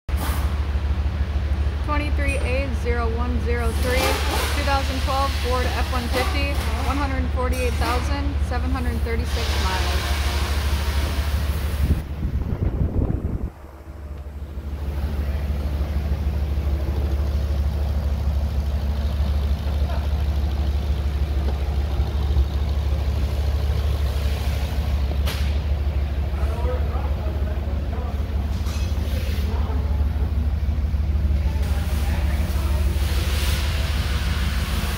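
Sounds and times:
truck engine idling: 0:00.1 - 0:34.9.

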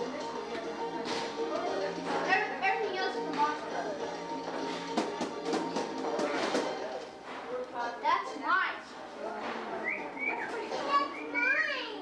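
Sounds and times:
children calling and chattering: 0:00.0 - 0:04.4, 0:09.8 - 0:12.0.

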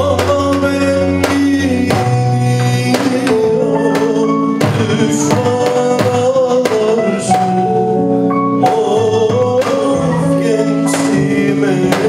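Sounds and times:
band playing melody over chords: 0:00.0 - 0:12.0
drum kit strokes: 0:00.0 - 0:12.0.

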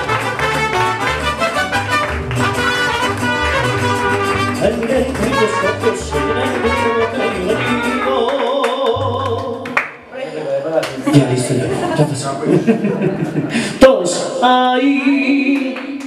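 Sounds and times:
bass line: 0:00.0 - 0:10.0
mariachi band playing: 0:00.0 - 0:10.1
man singing: 0:04.2 - 0:09.8, 0:13.7 - 0:16.0.

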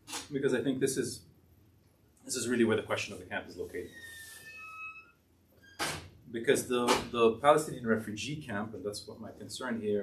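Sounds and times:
thin squeak-like whine: 0:03.7 - 0:05.8.

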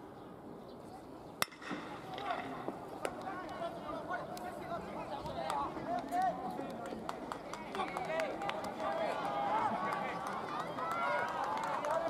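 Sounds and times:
young players shouting: 0:08.1 - 0:12.0.

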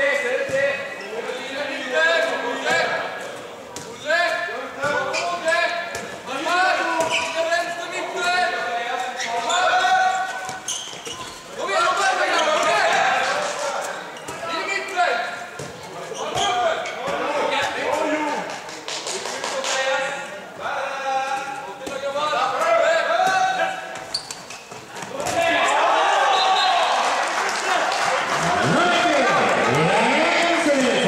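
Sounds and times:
ball bouncing on court floor: 0:05.9 - 0:06.3, 0:15.5 - 0:19.4
voices shouting and calling: 0:25.1 - 0:31.0.

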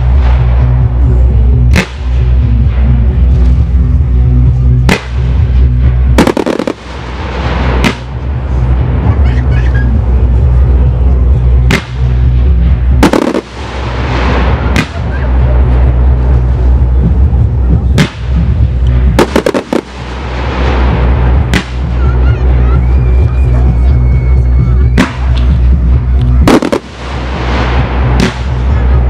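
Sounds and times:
fireworks bursting: 0:00.0 - 0:03.8, 0:04.8 - 0:29.0
fireworks crackling: 0:00.0 - 0:29.0
music with steady bass: 0:00.0 - 0:29.0.

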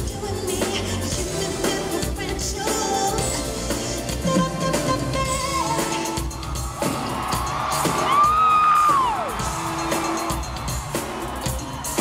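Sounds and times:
live pop music over a pa: 0:00.0 - 0:12.0.

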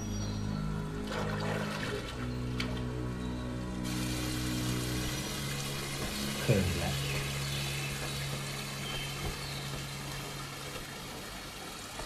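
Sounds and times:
soft drama score: 0:00.0 - 0:10.8
water running over rocks: 0:03.8 - 0:12.0.

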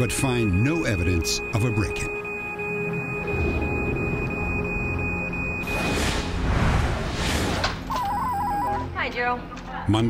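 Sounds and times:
high-pitched electronic alarm tone: 0:00.0 - 0:06.1
low dark music underscore: 0:00.0 - 0:10.0.

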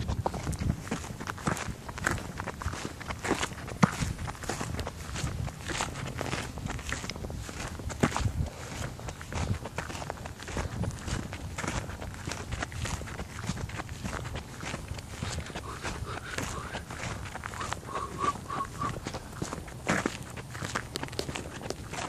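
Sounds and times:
footsteps walking: 0:00.0 - 0:22.0.

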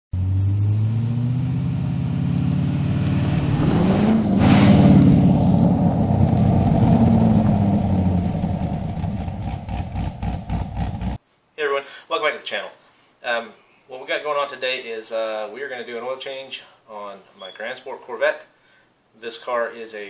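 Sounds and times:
car engine driving past: 0:00.1 - 0:11.2
rush of air: 0:03.3 - 0:08.4.

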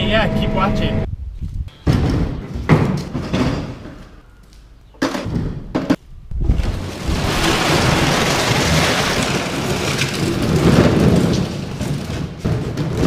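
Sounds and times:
plastic jugs clattering together: 0:05.0 - 0:13.0.

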